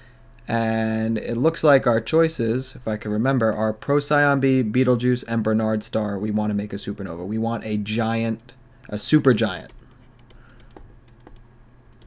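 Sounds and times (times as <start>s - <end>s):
stylus tapping on a tablet: 9.7s - 12.0s.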